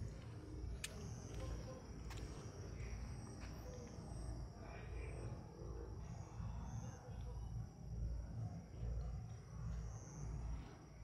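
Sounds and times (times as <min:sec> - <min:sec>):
faint high-pitched whine: 0:00.0 - 0:11.0.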